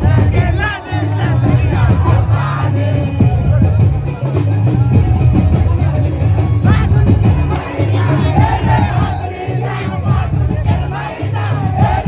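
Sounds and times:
men shouting and cheering: 0.0 - 3.2, 6.3 - 12.0
loud dance music: 6.7 - 12.0.

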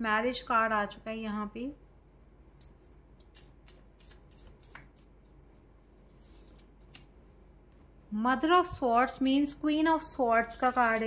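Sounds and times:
cards shuffling: 3.2 - 5.1, 6.1 - 7.2.

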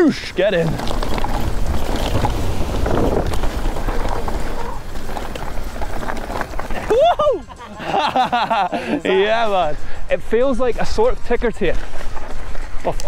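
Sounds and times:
bike rattling and clicking: 0.0 - 13.0
tyres rolling over gravel: 0.0 - 13.0
wind on microphone: 0.7 - 6.8.

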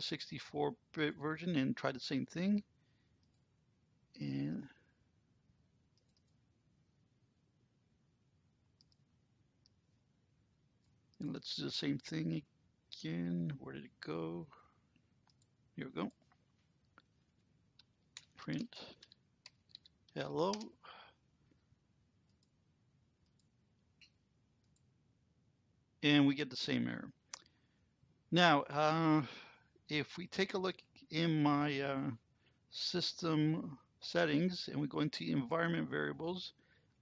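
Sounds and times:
computer mouse clicks: 5.9 - 6.4, 8.8 - 9.8, 17.8 - 20.7, 22.2 - 22.6, 23.2 - 24.9
faint computer clicks: 17.8 - 20.7.

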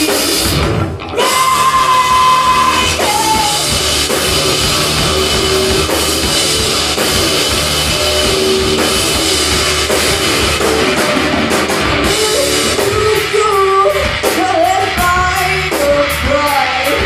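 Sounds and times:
drum kit: 0.0 - 17.0
live rock band playing: 0.0 - 17.0.

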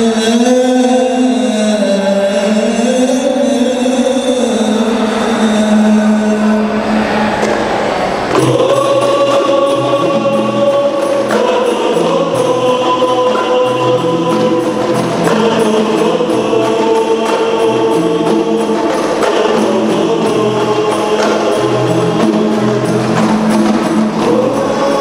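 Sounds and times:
men's group singing: 0.0 - 25.0
frame drums beating: 6.8 - 25.0.

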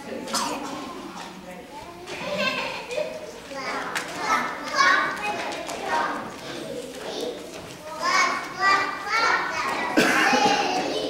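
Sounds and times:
young children talking and calling out: 0.0 - 11.0.

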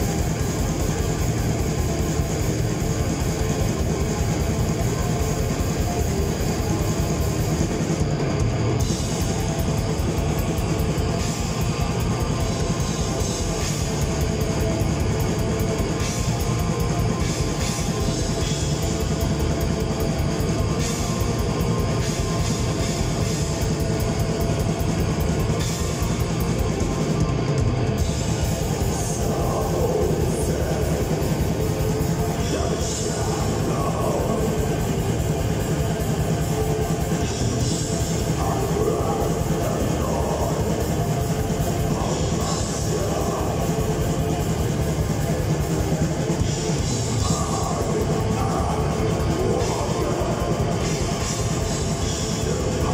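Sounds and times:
distorted guitars and bass: 0.0 - 52.9
fast drumming: 0.0 - 52.9
vocalist singing: 28.5 - 45.0, 46.4 - 52.9.

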